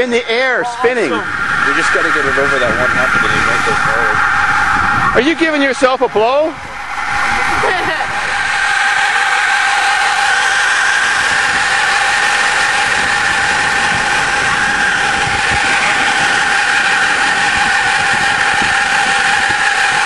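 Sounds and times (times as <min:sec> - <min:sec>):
high whistle from tailpipe: 0:00.4 - 0:20.0
bus engine idling: 0:06.5 - 0:20.0.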